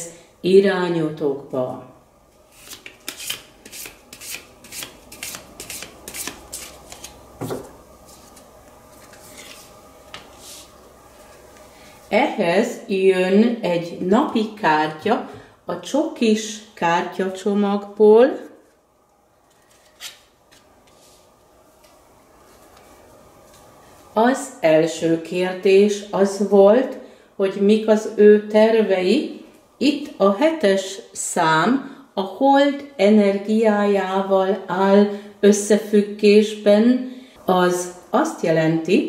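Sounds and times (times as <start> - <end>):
cards being shuffled: 2.5 - 10.7.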